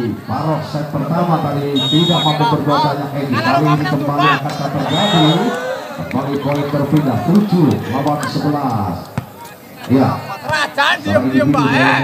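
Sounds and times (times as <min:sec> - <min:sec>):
commentator speaking: 0:00.0 - 0:12.0.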